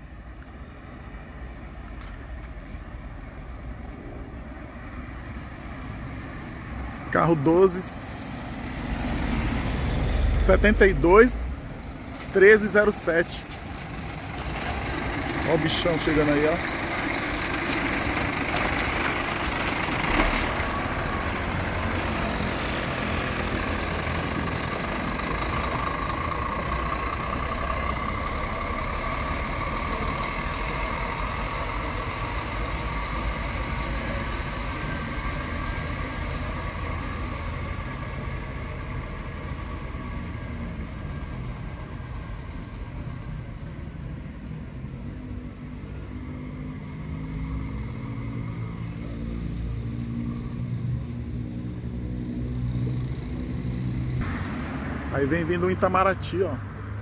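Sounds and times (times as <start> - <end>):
diesel coach engine with whine: 0.0 - 57.0.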